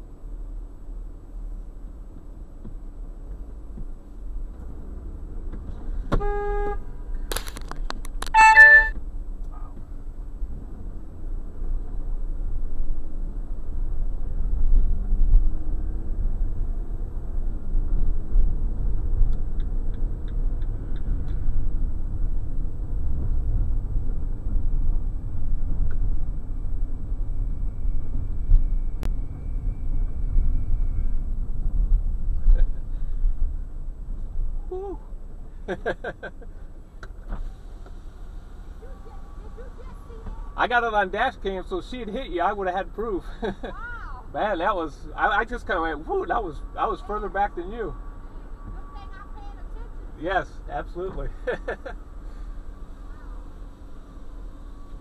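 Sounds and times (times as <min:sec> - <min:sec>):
car engine and road rumble: 0:00.0 - 0:55.0
car horn toot: 0:06.1 - 0:07.0, 0:08.2 - 0:09.0
choppy car horn honk: 0:06.1 - 0:07.0, 0:08.2 - 0:09.0.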